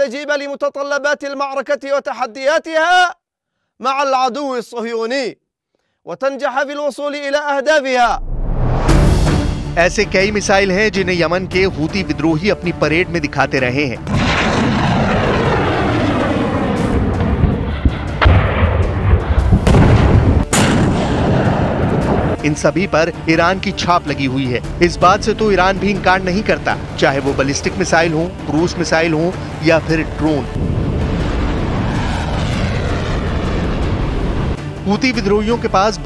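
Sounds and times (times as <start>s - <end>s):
aircraft engine running: 9.1s - 36.0s
rocket motor roaring: 30.5s - 34.6s.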